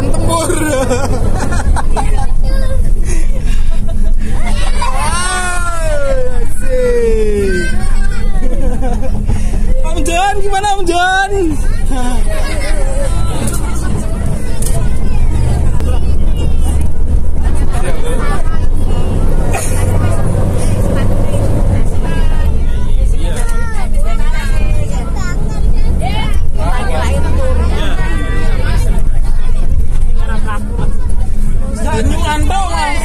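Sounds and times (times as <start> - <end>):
bus engine and road rumble: 0.0 - 33.0
passengers talking: 0.0 - 33.0.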